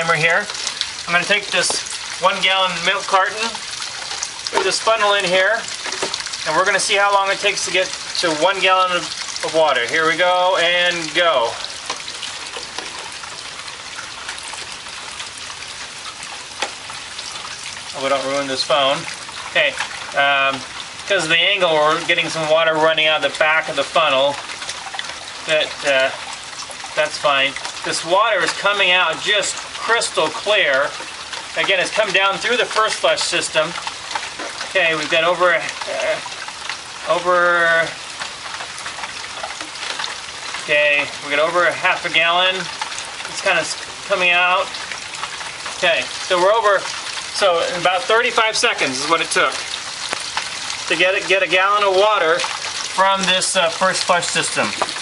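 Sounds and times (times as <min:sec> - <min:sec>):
sharp drip taps: 0:00.0 - 0:55.0
steady rain falling: 0:00.0 - 0:55.0
water pouring into jug: 0:00.0 - 0:55.0.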